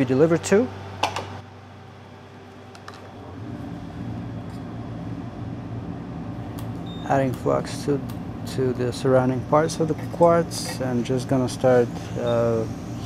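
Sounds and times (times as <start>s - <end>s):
electric fan humming: 0.0s - 13.0s.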